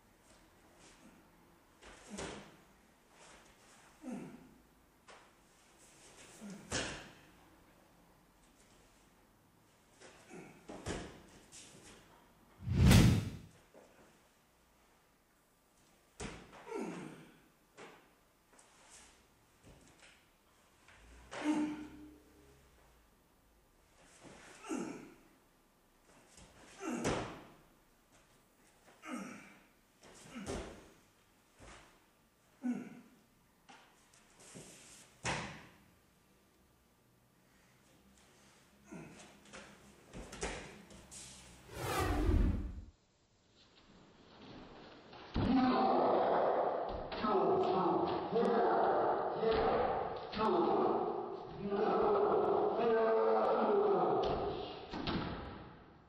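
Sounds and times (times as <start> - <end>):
hand strikes thumping and swishing: 12.6 - 13.5.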